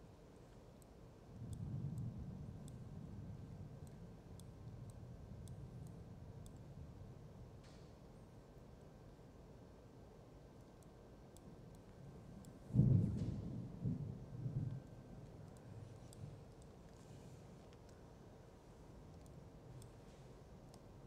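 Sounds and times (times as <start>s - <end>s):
thunder clap rumbling: 12.7s - 14.8s.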